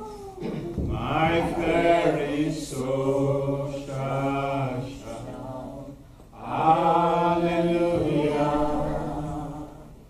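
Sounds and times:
man singing worship song: 0:00.9 - 0:05.4, 0:06.3 - 0:09.9.

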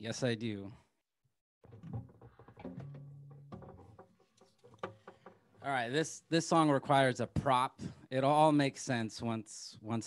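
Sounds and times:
acoustic guitar handling knocks: 0:01.6 - 0:05.7.

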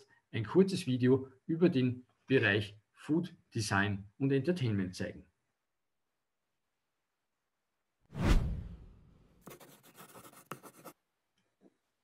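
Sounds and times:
deep whoosh hit: 0:08.2 - 0:09.0
pen scratching on paper: 0:09.4 - 0:11.0.

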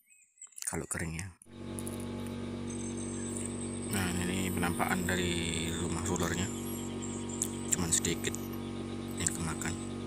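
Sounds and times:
steady low hum: 0:01.4 - 0:10.0.

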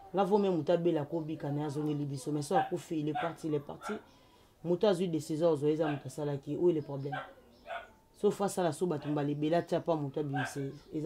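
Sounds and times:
person talking: 0:00.0 - 0:07.2, 0:08.2 - 0:11.0.

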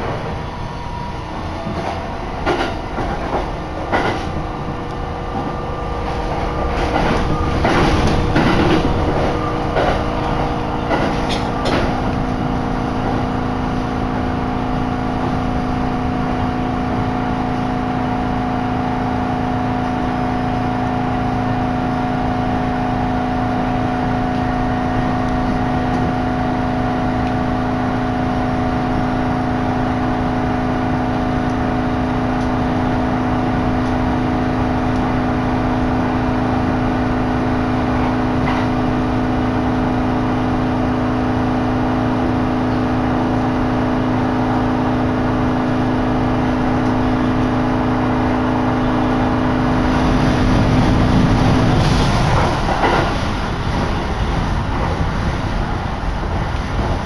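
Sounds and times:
train motor hum: 0:00.0 - 0:57.0
train running rumble: 0:00.0 - 0:57.0.

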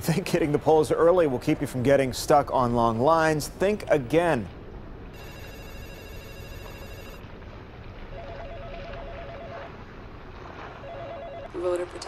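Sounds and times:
telephone ringing with warbling trill: 0:05.2 - 0:07.2, 0:08.1 - 0:09.7, 0:10.8 - 0:11.6.

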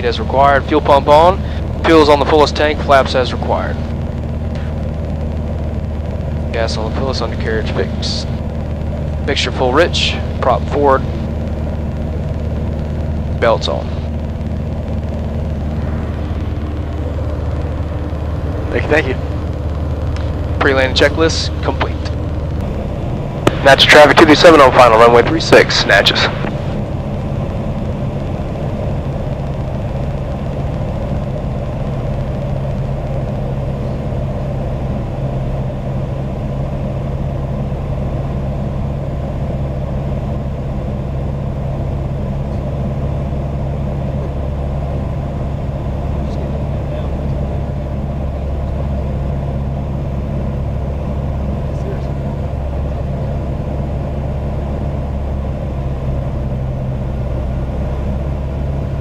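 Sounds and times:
aircraft engine and propeller drone: 0:00.0 - 0:59.0.

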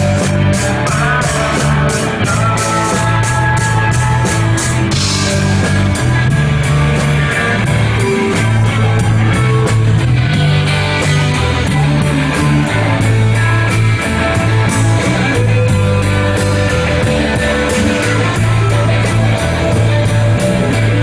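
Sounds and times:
drums with cymbals: 0:00.0 - 0:21.0
electric bass notes: 0:00.0 - 0:21.0
live ska band playing: 0:00.0 - 0:21.0.

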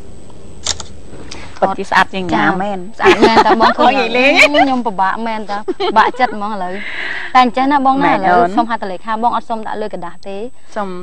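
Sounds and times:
phone camera shutter click: 0:00.6 - 0:00.9
woman speaking: 0:01.6 - 0:11.0.

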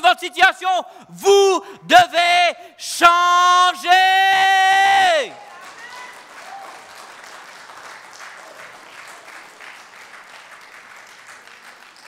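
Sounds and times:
congregation applauding: 0:04.7 - 0:12.0.

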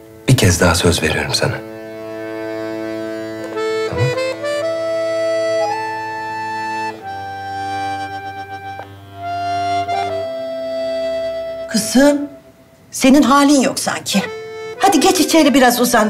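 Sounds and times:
slow rising melody: 0:00.0 - 0:12.8, 0:14.2 - 0:16.0
reedy held chords: 0:00.0 - 0:16.0.

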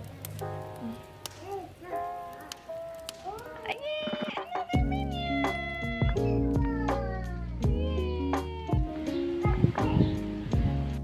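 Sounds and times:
background music with deep bass: 0:04.8 - 0:11.0.

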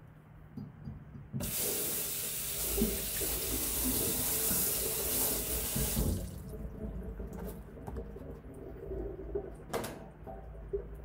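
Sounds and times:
tap water running into sink: 0:01.4 - 0:08.4.

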